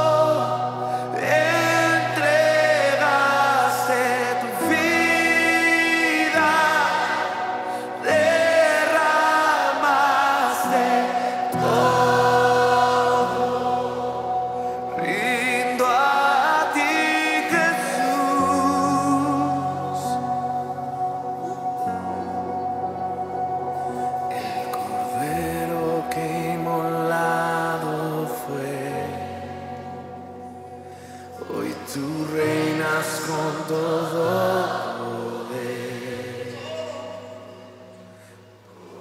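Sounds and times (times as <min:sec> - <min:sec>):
band playing worship music: 0:00.0 - 0:39.0
group of singers holding notes: 0:00.0 - 0:39.0
sustained backing tone: 0:00.0 - 0:39.0.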